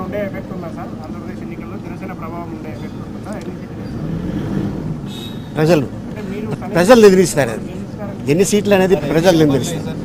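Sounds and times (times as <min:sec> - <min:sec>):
man talking: 0:05.6 - 0:10.0.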